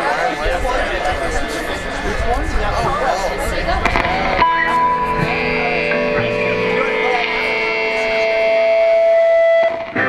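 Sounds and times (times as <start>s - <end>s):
rock guitar notes: 2.8s - 10.0s.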